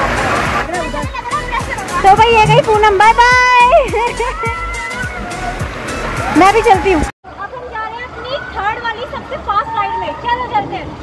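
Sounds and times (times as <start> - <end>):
background music: 0.0 - 7.1
water rushing down slide tube: 0.0 - 11.0.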